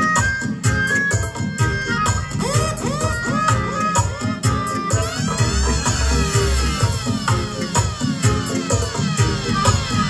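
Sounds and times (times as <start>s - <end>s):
heavy bass beat: 0.0s - 10.0s
reggae dub music: 0.0s - 10.0s.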